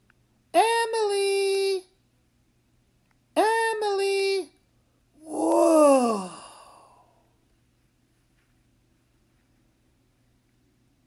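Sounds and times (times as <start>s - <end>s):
man's long wordless call: 5.2s - 6.8s.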